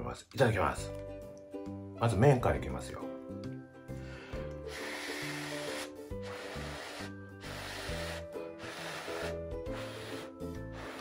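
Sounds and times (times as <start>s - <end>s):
background music with low notes: 0.0s - 11.0s
person slurping noodles: 4.6s - 11.0s.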